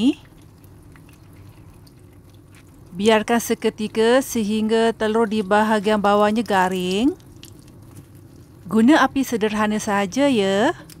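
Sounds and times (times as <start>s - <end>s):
eggs sizzling in hot oil: 0.0s - 9.8s.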